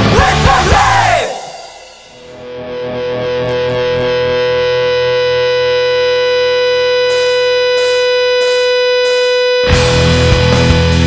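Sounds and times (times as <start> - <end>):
distorted electric guitar chord: 0.0 - 11.0.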